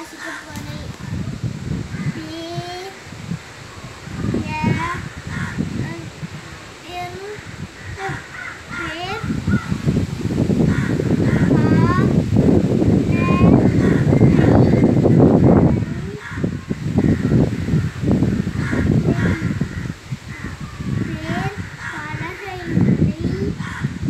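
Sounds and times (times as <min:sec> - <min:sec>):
boy reading aloud: 0:00.0 - 0:09.6, 0:10.7 - 0:17.1, 0:18.6 - 0:23.7
birds chirping: 0:00.0 - 0:24.0.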